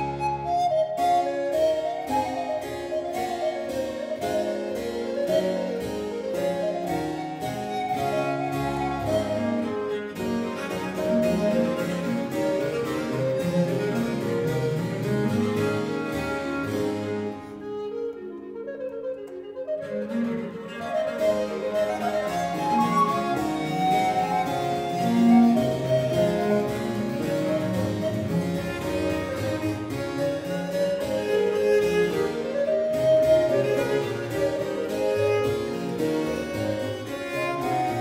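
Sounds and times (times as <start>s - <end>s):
baroque chamber music: 0.0s - 38.0s
recorder melody: 0.0s - 38.0s
harpsichord running notes: 1.5s - 18.0s, 20.1s - 38.0s.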